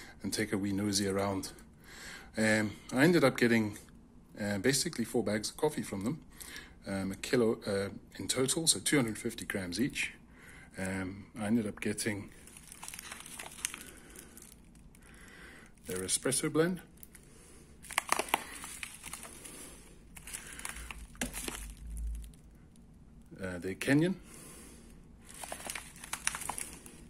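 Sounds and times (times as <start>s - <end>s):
foil bag crinkling: 12.0s - 23.0s, 25.2s - 27.0s.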